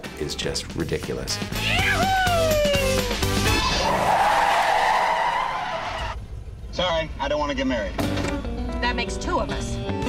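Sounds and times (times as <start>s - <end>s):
car tyres squealing: 3.2s - 6.3s.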